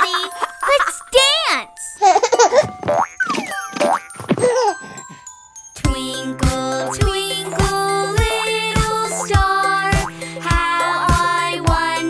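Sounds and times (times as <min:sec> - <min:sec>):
light children's music: 0:00.0 - 0:12.0
sliding cartoon sound effects: 0:02.6 - 0:04.8, 0:06.6 - 0:10.2.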